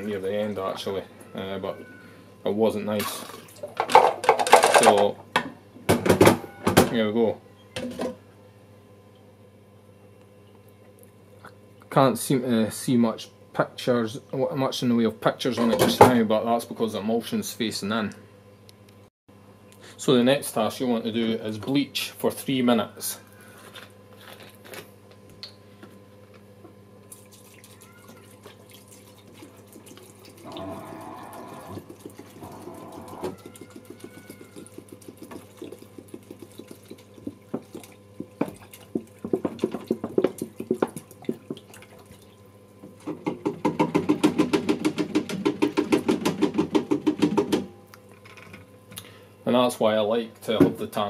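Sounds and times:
liquid pouring and splashing: 27.1s - 42.4s.

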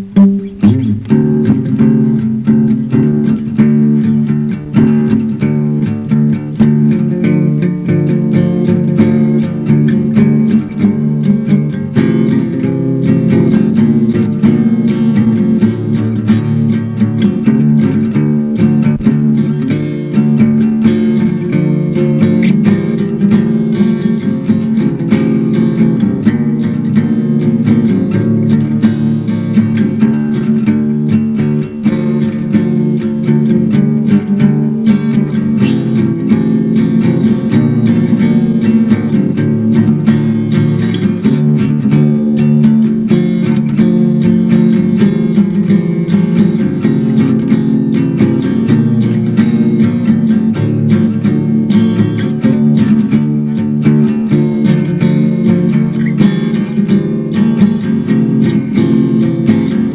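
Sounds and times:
acoustic guitar picking: 0.0s - 59.9s.

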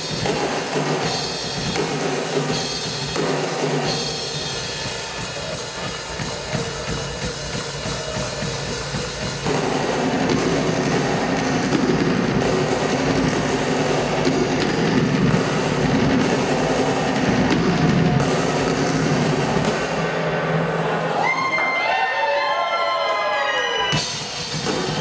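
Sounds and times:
rock drum kit playing: 0.0s - 20.8s, 23.9s - 25.0s.

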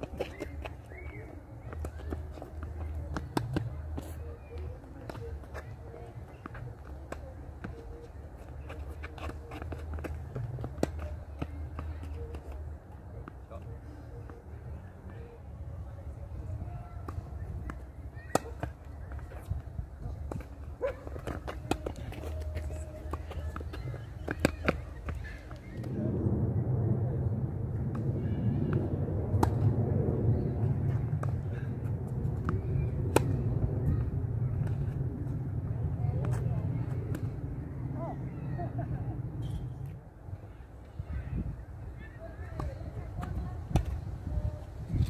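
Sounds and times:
tennis ball bouncing: 1.7s - 4.1s
low rumble: 24.8s - 41.9s.

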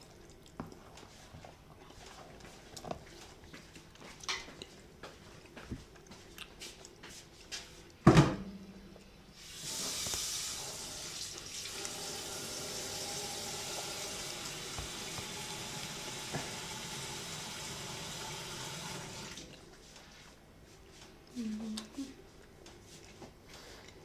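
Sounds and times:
running water rushing: 9.5s - 19.5s.

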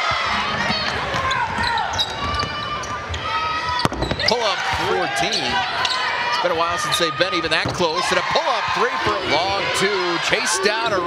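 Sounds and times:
voices in gym: 0.0s - 11.0s.

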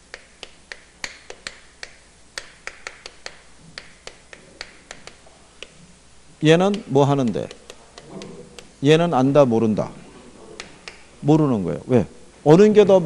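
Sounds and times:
chalk clicking on chalkboard: 0.0s - 5.8s, 6.6s - 8.7s.

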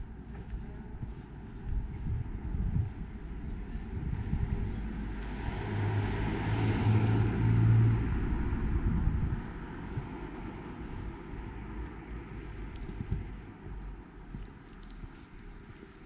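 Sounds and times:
vehicle passing by: 3.7s - 13.3s.

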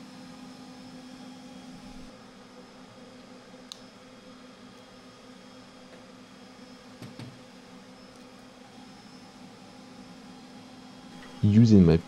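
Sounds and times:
cooling fans humming: 0.0s - 12.0s.

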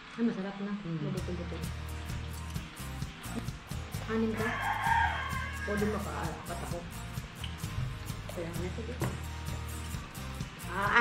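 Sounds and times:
background music: 1.2s - 11.0s.

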